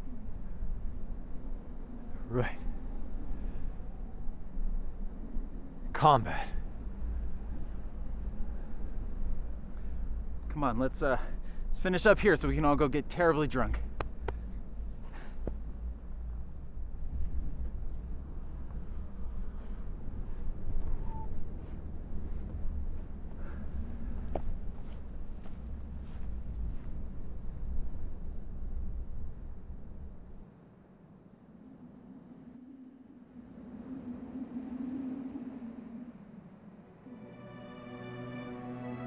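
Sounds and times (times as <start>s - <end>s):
wind rumble: 0.0s - 37.3s
low hum: 0.0s - 39.0s.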